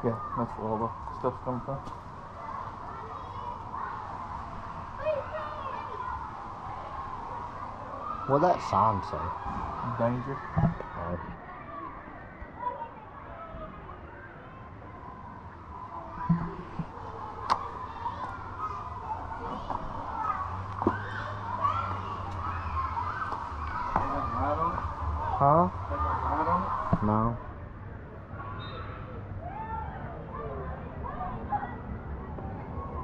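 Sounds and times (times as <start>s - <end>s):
people and children talking: 0.0s - 33.0s.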